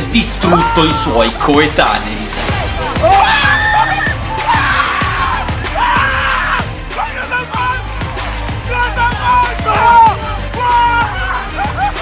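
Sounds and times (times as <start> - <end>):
background music with steady beat: 0.0 - 12.0
high-pitched excited screams: 3.0 - 6.6, 8.7 - 11.9.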